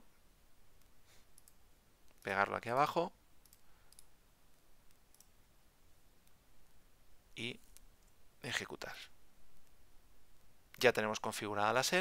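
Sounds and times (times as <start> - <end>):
faint clicks: 0.8 - 2.3, 3.4 - 5.4.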